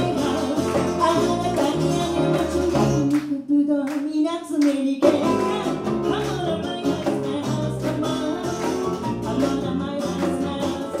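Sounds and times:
hand claps: 0.2s - 4.9s, 7.8s - 9.5s.

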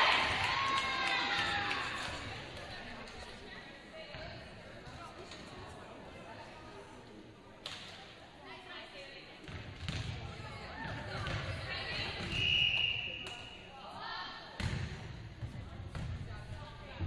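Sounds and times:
volleyball hits echoing: 9.4s - 13.5s, 14.6s - 16.4s
referee's whistle blast: 12.2s - 13.6s.

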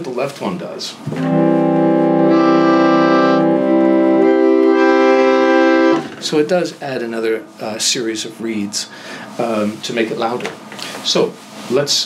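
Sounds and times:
reed organ chords: 1.2s - 6.2s.

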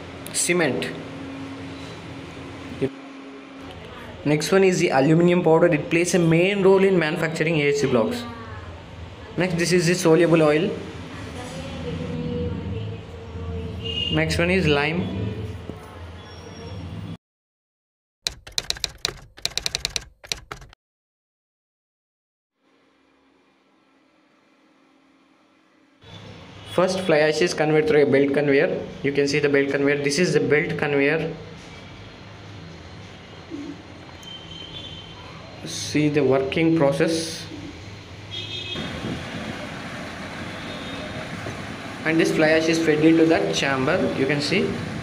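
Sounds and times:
typewriter key clicks: 18.3s - 20.8s.

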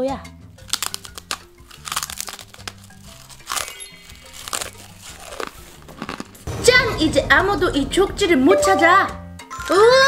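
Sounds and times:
background music with low notes: 0.0s - 10.0s
crunchy cookie chewing: 0.5s - 6.5s.

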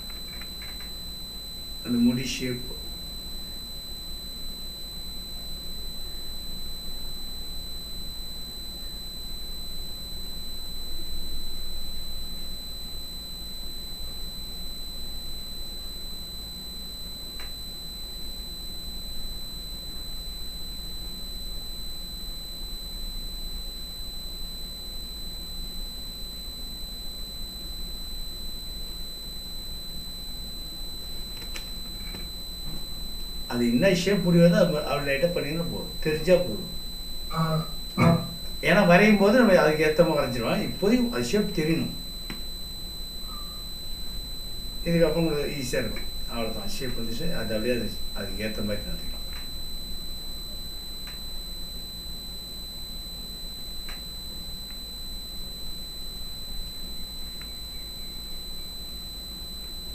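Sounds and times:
electrical hum and hiss: 0.0s - 59.9s
high-pitched whine: 0.0s - 59.9s
faint click: 17.4s - 17.6s, 31.4s - 32.3s, 49.1s - 49.5s, 51.0s - 51.2s, 53.8s - 54.1s, 57.4s - 57.6s.

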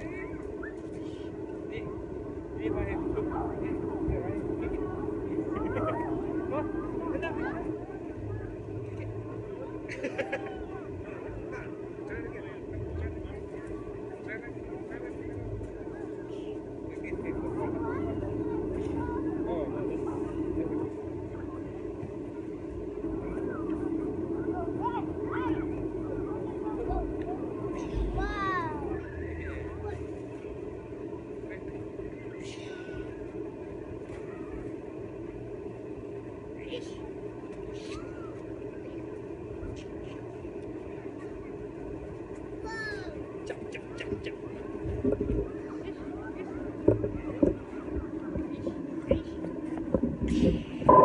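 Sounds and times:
faint voices calling: 0.0s - 51.0s
low background rumble: 0.0s - 51.0s.

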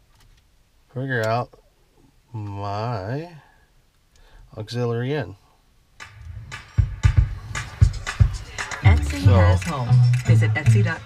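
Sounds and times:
music with electronic drum beat: 6.0s - 11.0s.

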